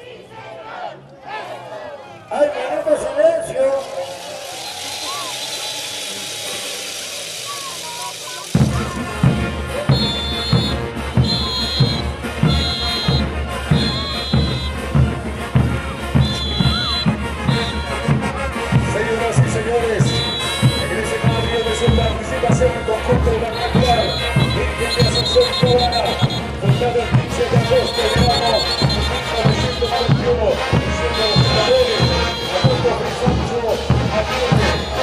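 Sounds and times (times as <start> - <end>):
crowd noise: 0.0 - 35.0
dance band music: 2.3 - 35.0
steady hiss: 3.8 - 9.4.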